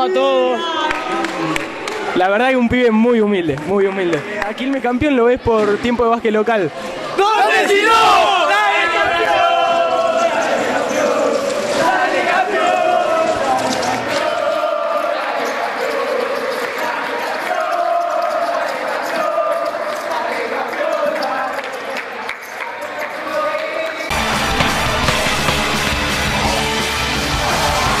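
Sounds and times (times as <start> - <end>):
boys chanting and shouting: 6.6 - 24.1.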